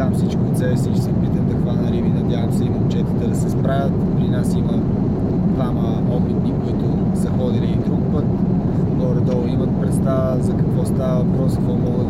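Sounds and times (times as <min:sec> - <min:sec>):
jet airliner cabin engine drone: 0:00.0 - 0:12.0.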